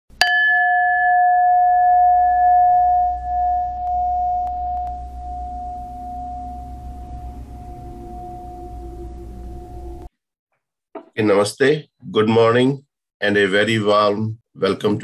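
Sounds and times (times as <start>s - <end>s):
bell ringing: 0.2s - 10.1s.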